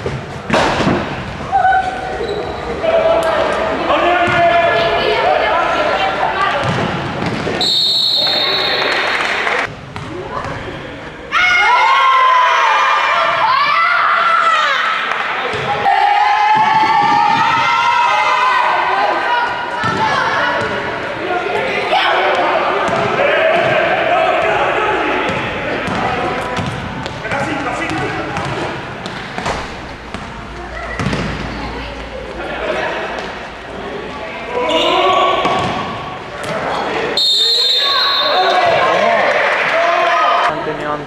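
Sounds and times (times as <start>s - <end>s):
basketball bouncing on court: 6.6s - 7.6s, 15.5s - 15.8s, 25.3s - 31.5s
people shouting: 11.3s - 15.1s.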